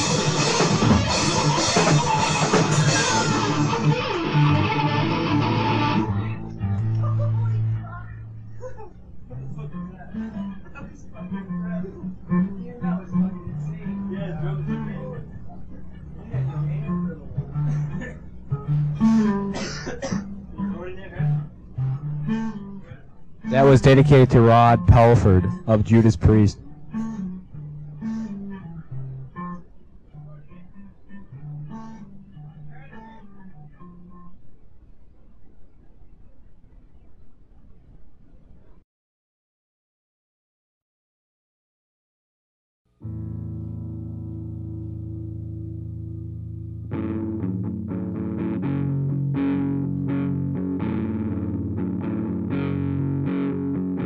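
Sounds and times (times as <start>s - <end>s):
alternative rock band playing: 0.0s - 6.9s, 43.1s - 54.0s
guitar notes played softly: 0.0s - 34.5s, 43.0s - 54.0s.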